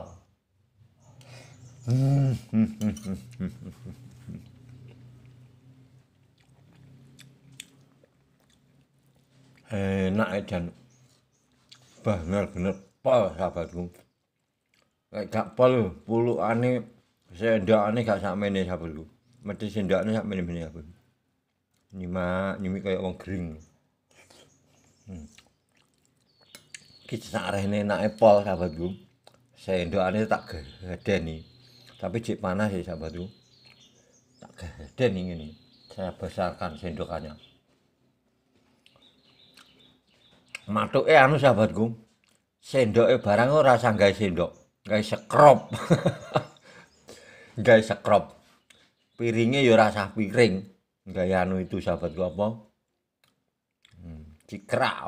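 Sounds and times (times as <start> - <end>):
person murmuring hmm: 1.8 - 4.5
man humming while chewing food: 1.8 - 5.0.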